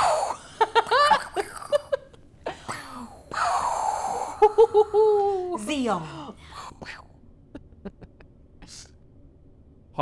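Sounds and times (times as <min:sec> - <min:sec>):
women laughing: 0:00.4 - 0:02.2, 0:04.4 - 0:05.6, 0:07.6 - 0:08.3.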